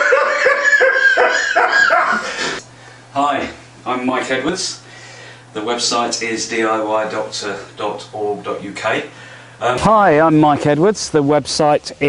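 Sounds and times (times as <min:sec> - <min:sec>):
man laughing hard: 0:00.0 - 0:02.6.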